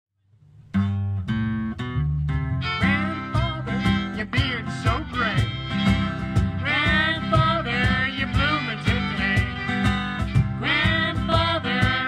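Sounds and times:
acoustic guitar: 0.2s - 12.0s
acoustic country band playing: 0.8s - 12.0s.

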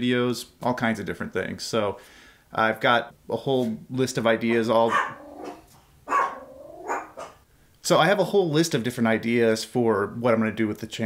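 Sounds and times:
dog barking: 4.5s - 7.4s.

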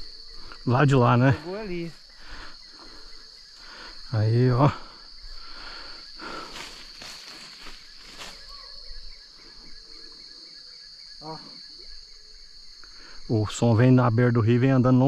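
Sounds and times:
insects chirring: 0.0s - 15.0s
faint rustles: 5.4s - 10.1s.

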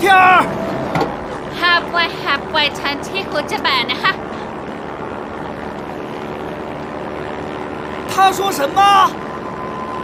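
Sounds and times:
propeller aircraft engines droning: 0.0s - 10.0s.

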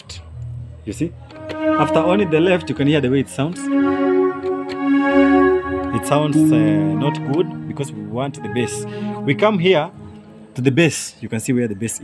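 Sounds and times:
keyboard holding a chord: 1.3s - 11.1s
person talking: 5.9s - 10.0s.

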